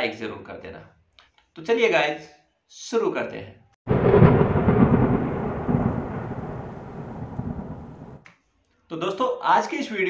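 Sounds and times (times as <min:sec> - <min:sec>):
thunder-like rumble: 0:03.9 - 0:08.2.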